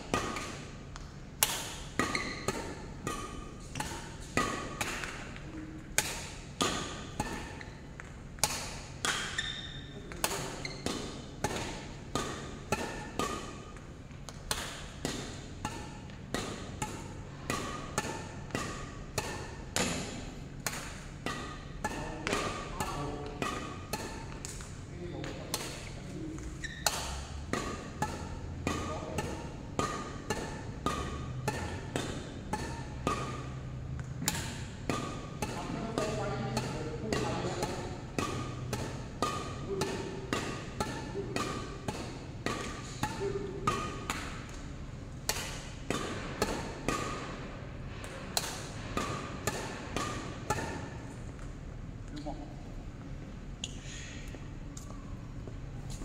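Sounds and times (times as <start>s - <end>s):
badminton rackets hitting shuttlecock: 0.0s - 51.6s.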